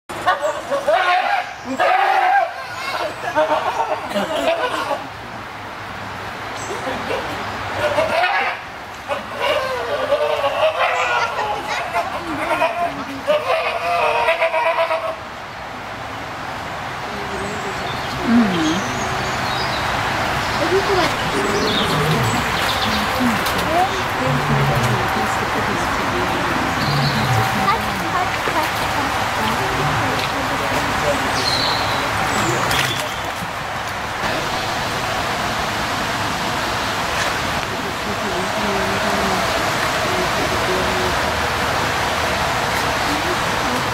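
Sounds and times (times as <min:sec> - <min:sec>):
faint voices: 0:17.0 - 0:19.2, 0:20.1 - 0:35.7, 0:37.4 - 0:43.9
steady rushing noise: 0:32.0 - 0:43.9.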